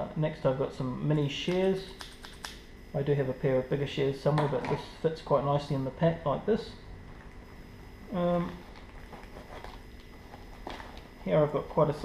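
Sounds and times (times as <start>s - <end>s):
fabric pouch rustling: 8.6s - 11.2s.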